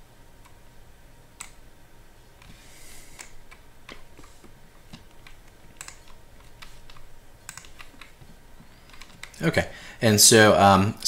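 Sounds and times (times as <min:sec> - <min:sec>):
keyboard and mouse clicks: 0:01.4 - 0:01.6, 0:03.2 - 0:09.4.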